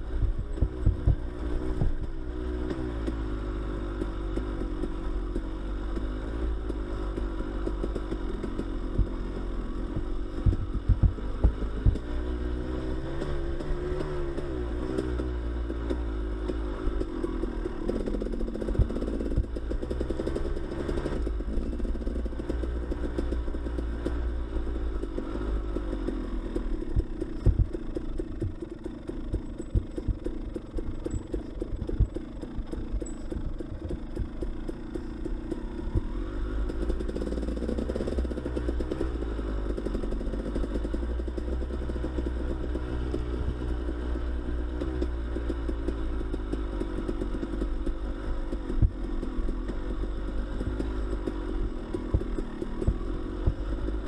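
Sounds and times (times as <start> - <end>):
dirt bike engine running: 0.0 - 54.0
bike knocks and clatter: 0.2 - 2.1, 10.0 - 12.3, 26.8 - 34.7.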